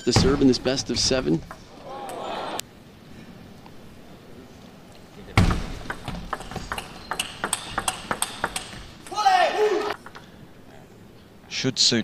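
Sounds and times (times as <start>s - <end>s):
player shouting: 1.7s - 2.6s, 9.0s - 10.0s
ping pong ball clicking off paddles: 5.5s - 9.1s.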